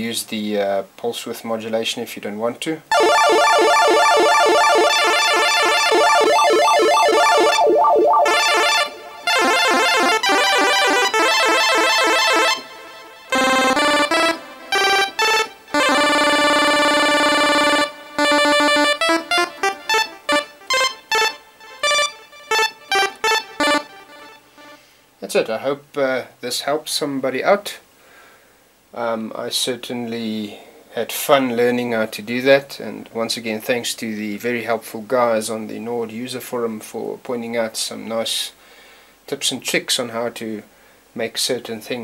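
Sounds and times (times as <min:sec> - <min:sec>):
synth pulse-wave lead: 0:02.9 - 0:09.9.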